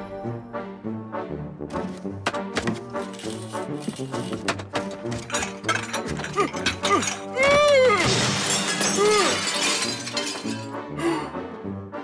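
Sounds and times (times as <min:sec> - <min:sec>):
background music: 0:00.0 - 0:12.0
shattering crash: 0:04.8 - 0:10.8.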